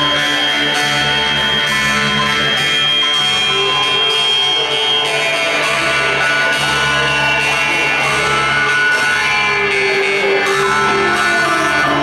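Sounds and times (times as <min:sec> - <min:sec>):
jaw harp buzzing drone: 0:00.0 - 0:12.0
band playing: 0:09.5 - 0:12.0.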